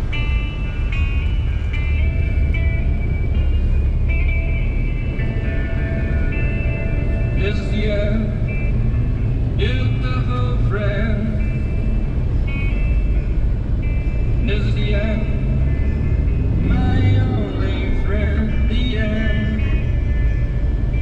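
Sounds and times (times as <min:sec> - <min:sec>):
car engine and tyre rumble: 0:00.0 - 0:21.0
music with singing: 0:00.0 - 0:21.0.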